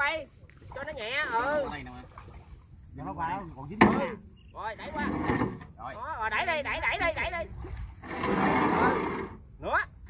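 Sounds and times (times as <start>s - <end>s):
steel ramp scraping and rattling: 4.9s - 5.8s, 8.0s - 9.4s.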